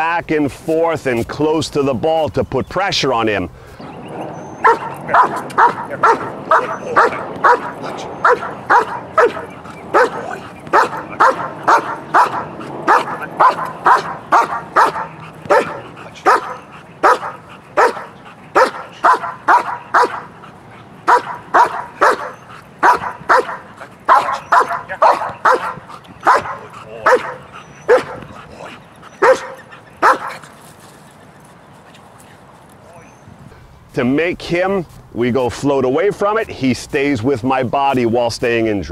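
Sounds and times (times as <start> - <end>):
dog barking: 4.5 - 20.3, 21.0 - 28.3, 29.1 - 30.4.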